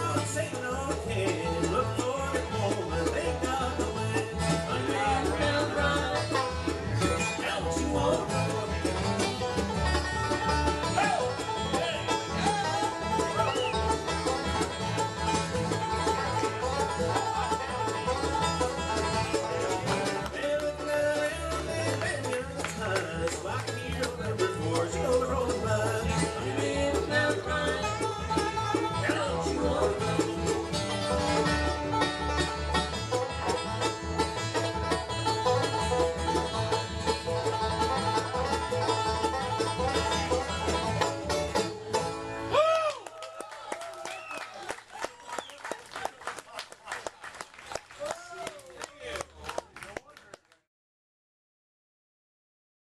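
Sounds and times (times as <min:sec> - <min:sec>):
banjo picking quick rolls: 0:00.0 - 0:42.8
bluegrass band playing: 0:00.0 - 0:47.9.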